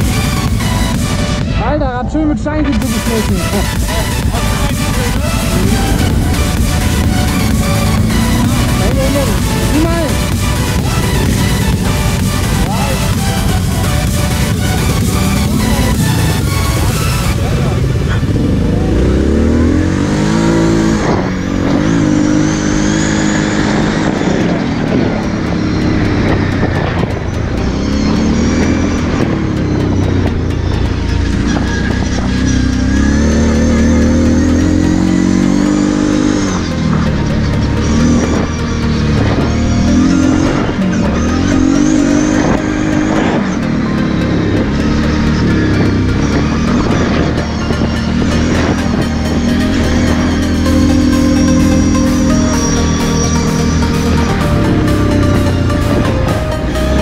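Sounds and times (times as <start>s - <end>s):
quad bike engine revving: 0.0s - 57.0s.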